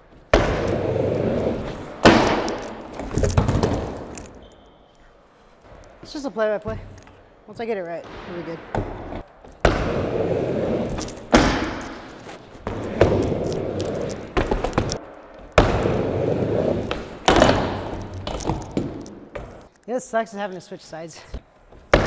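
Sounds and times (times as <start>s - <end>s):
skateboard wheels rolling on ramp: 0.1s - 4.3s, 8.9s - 19.6s
skateboard smacking ramp: 0.2s - 4.4s, 8.1s - 19.6s.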